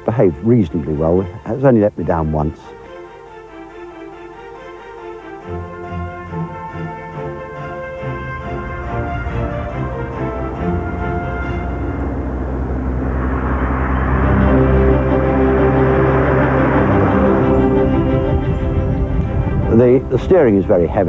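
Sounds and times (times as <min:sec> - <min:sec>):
dramatic orchestral music: 0:00.0 - 0:21.0
rushing noise: 0:02.7 - 0:21.0.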